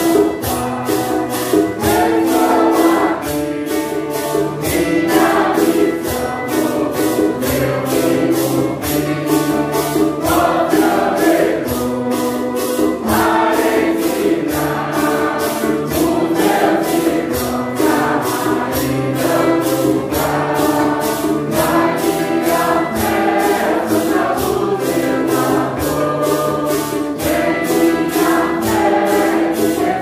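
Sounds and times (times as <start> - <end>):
congregation singing a hymn: 0.0 - 30.0
maracas shaken: 0.0 - 30.0
violin: 0.0 - 30.0.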